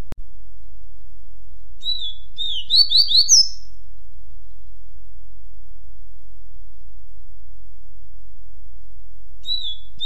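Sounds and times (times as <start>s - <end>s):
steady low hum: 0.0s - 10.0s
bird singing whistled notes: 1.8s - 3.8s, 9.4s - 10.0s.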